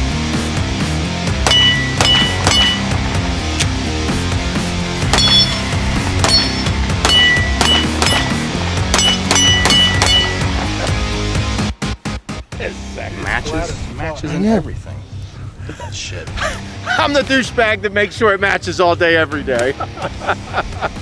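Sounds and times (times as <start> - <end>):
background music: 0.0 - 21.0
pistol shots: 1.4 - 2.8, 6.2 - 10.3
steel target ringing: 1.4 - 3.0, 5.1 - 10.6.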